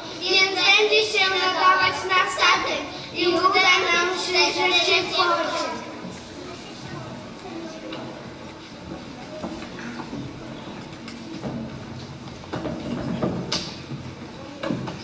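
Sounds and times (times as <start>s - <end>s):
murmur of children's voices: 0.0s - 15.0s.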